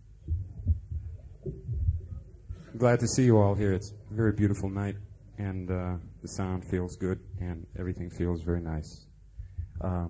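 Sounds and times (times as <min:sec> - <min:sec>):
soft dull low thumps: 0:00.0 - 0:02.7, 0:07.2 - 0:08.0, 0:09.3 - 0:10.0.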